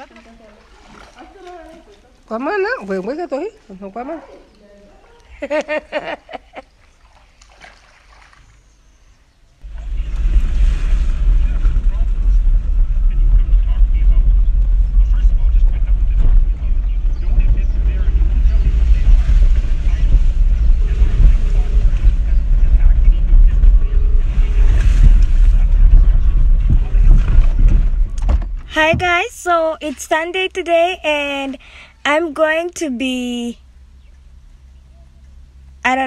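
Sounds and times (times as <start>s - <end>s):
wind buffeting microphone: 9.6s - 29.6s.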